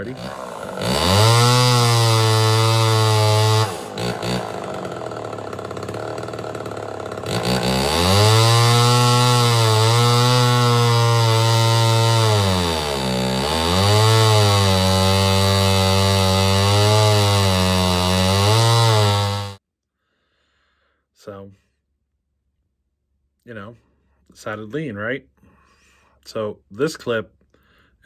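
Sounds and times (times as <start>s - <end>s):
chainsaw engine revving: 0.0s - 19.6s.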